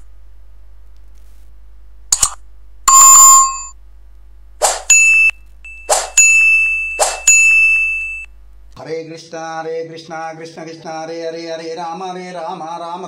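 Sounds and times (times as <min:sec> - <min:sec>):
short whooshes: 0:04.6 - 0:04.9
bright ding: 0:04.9 - 0:08.3
ringing bell-like chime: 0:04.9 - 0:08.3
man chanting: 0:08.8 - 0:13.0.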